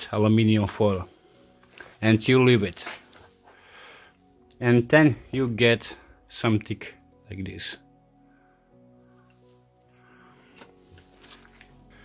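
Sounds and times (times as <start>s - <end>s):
quiet background music: 0.0s - 12.0s
faint rustling of paper: 9.1s - 12.0s.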